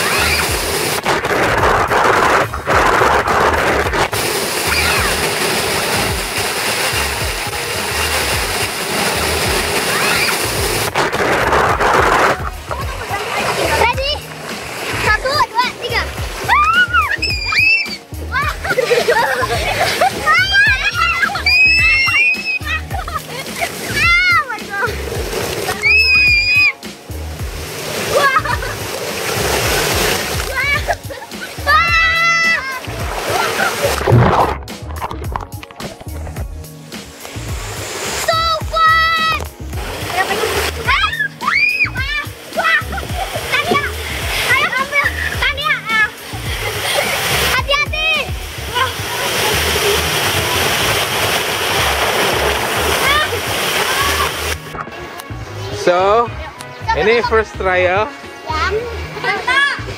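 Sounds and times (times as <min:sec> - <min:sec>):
children squealing: 0:00.0 - 0:00.7, 0:04.6 - 0:05.4, 0:09.8 - 0:10.6, 0:16.0 - 0:24.5, 0:25.7 - 0:26.8, 0:30.5 - 0:34.0, 0:40.8 - 0:43.9
water splashing down a slide: 0:00.0 - 0:54.9
background music with steady beat: 0:00.0 - 0:59.9.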